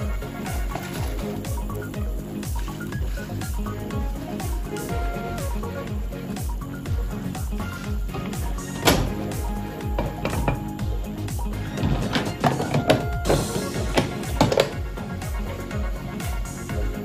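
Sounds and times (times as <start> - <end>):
electronic music with steady beat: 0.0 - 17.0.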